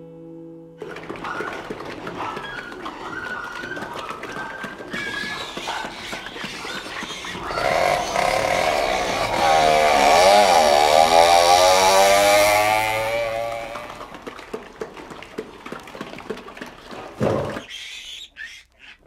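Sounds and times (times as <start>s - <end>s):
engine-like drone: 0.9s - 16.6s.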